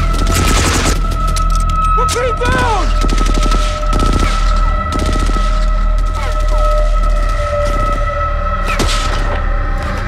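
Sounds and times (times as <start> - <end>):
machine-gun fire: 2.9 - 5.6.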